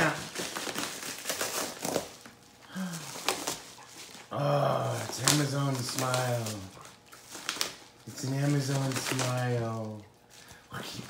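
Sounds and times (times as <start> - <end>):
paper mailer crinkling: 0.0 - 11.0.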